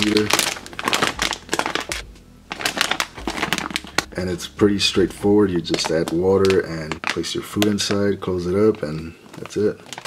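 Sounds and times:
plastic sleeve crinkling: 0:00.0 - 0:10.0.

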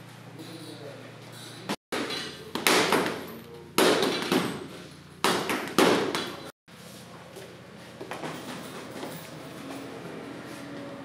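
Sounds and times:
boxing gloves punching heavy bag: 0:02.0 - 0:06.5.

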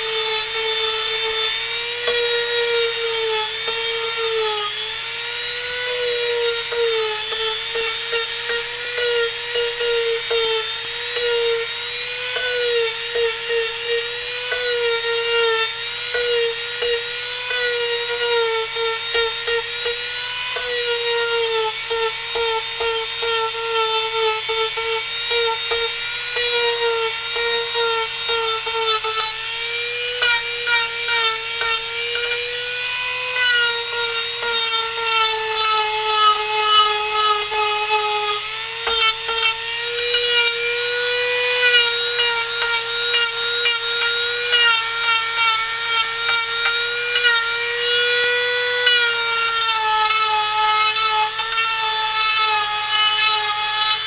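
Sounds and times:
rotary tool sanding wood: 0:00.0 - 0:54.0.

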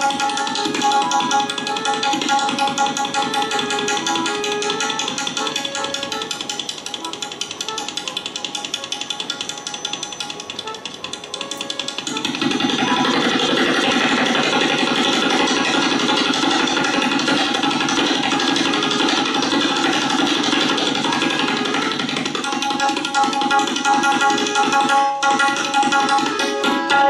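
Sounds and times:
harmonium melody: 0:00.0 - 0:27.0
rapid tabla strokes: 0:00.0 - 0:27.0.

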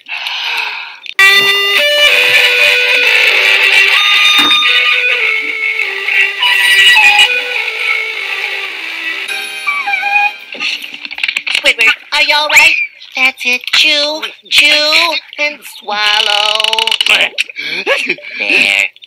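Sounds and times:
instrumental melody: 0:01.2 - 0:10.8.

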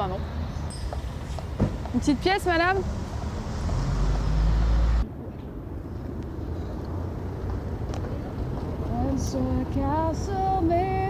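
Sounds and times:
vehicle passing with low rumble: 0:00.0 - 0:10.3
traffic hum: 0:00.0 - 0:11.0.

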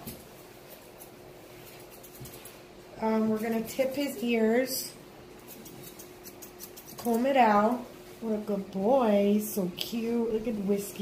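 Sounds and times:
shears snipping hair: 0:00.0 - 0:07.9
quiet steady hum: 0:00.0 - 0:11.0.

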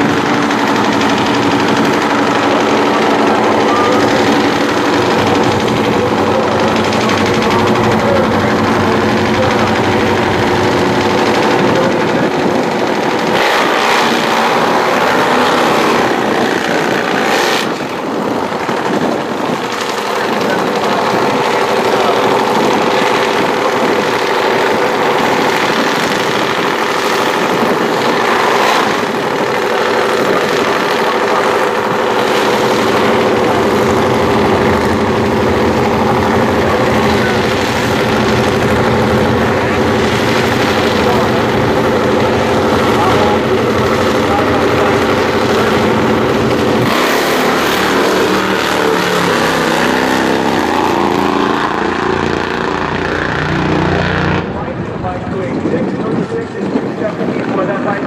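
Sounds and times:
drag bike engines revving: 0:00.0 - 0:58.0.

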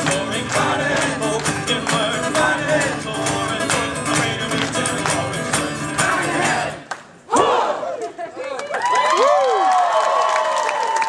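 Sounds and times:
audience whooping and cheering: 0:07.8 - 0:11.0.

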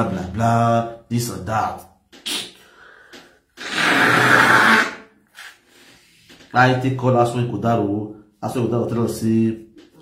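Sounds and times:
man blowing his nose: 0:03.6 - 0:05.8.

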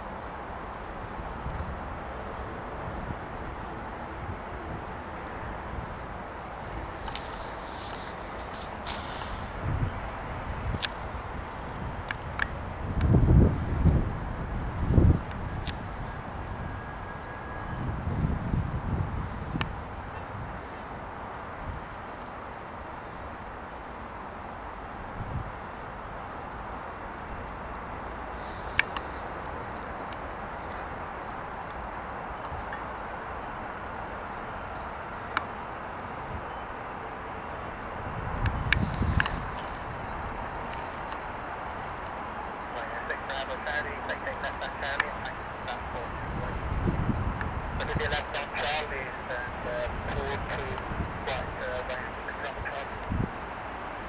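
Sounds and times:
low outdoor rumble: 0:00.0 - 0:54.0
wind buffeting microphone: 0:00.9 - 0:22.1, 0:25.0 - 0:25.6, 0:37.6 - 0:44.0, 0:44.7 - 0:48.4, 0:49.0 - 0:54.0
distant jet engines idling: 0:19.2 - 0:54.0.

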